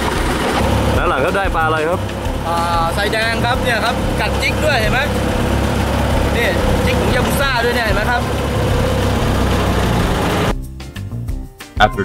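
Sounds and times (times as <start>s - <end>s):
boat engine droning: 0.0s - 10.5s
man speaking: 1.0s - 5.2s, 6.3s - 8.4s.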